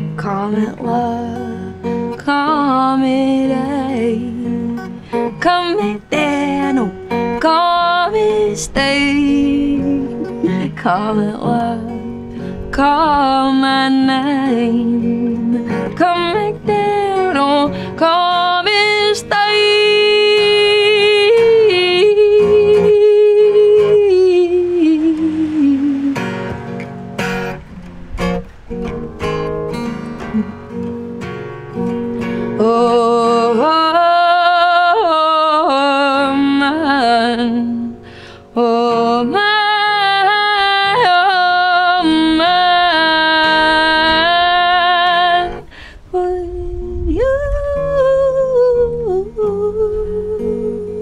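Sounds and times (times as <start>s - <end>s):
strummed acoustic guitar: 0.0s - 51.0s
woman singing long note: 2.2s - 12.1s, 12.7s - 26.6s
woman humming: 8.2s - 11.5s, 30.2s - 30.7s.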